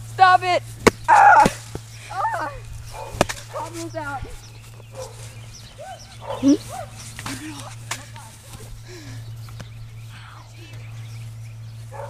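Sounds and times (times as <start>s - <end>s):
children yelping and shouting: 1.1s - 2.9s, 5.2s - 8.8s.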